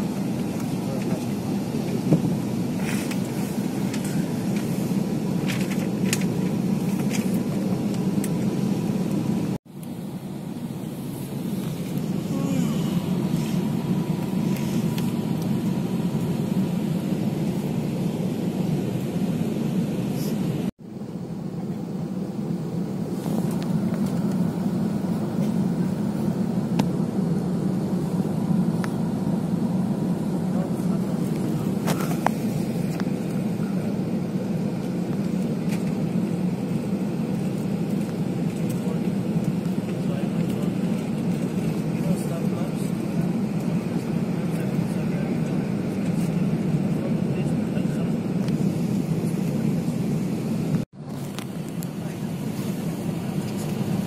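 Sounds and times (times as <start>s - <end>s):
airliner cabin engine noise: 0.0s - 54.0s.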